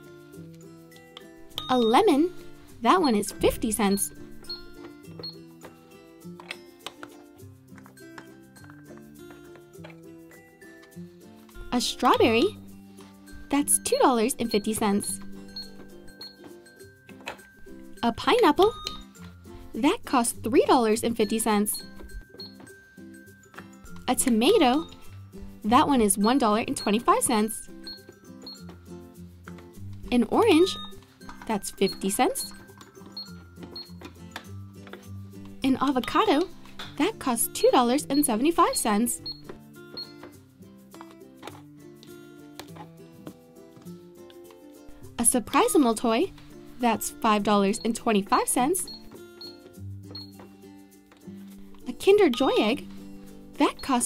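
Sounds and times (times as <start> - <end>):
high electronic beeps: 1.6 - 2.3, 18.6 - 19.1, 30.3 - 32.6, 46.9 - 50.4.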